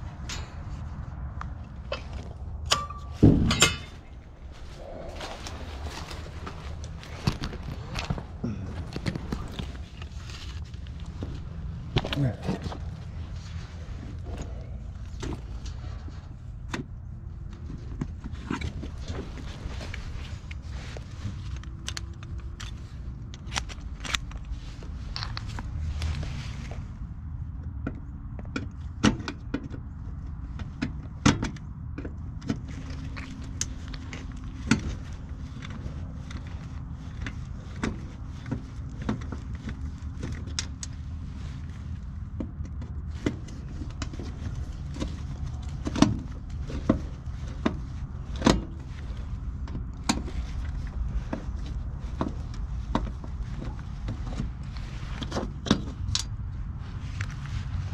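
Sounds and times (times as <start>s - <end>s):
steady low rumble: 0.0s - 57.9s.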